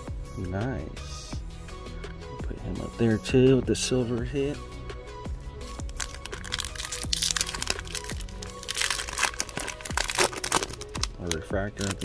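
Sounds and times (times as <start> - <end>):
background music: 0.0 - 12.0
foil wrapper crinkling: 5.8 - 12.0.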